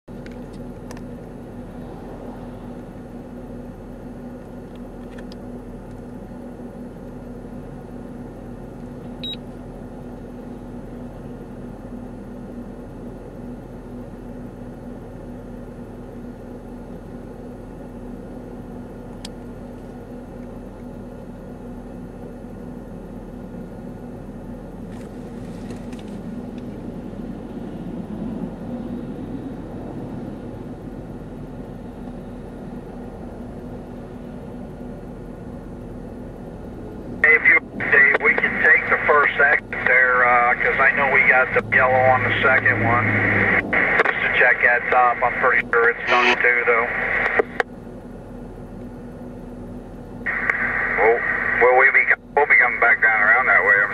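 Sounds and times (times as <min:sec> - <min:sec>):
vehicle idling: 0:00.1 - 0:53.9
speech over two-way radio: 0:37.2 - 0:47.6, 0:50.3 - 0:53.9.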